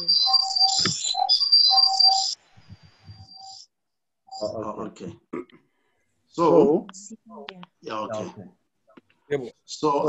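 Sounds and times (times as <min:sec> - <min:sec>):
high-pitched audio feedback squeal: 0:00.0 - 0:03.7.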